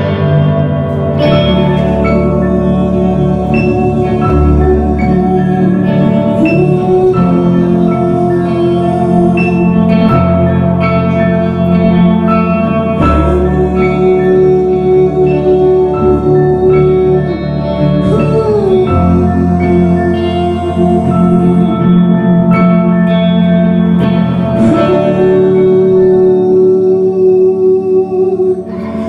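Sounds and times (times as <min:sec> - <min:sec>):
electric guitar with reverb: 0:00.0 - 0:29.0
keyboards playing chords: 0:00.0 - 0:29.0.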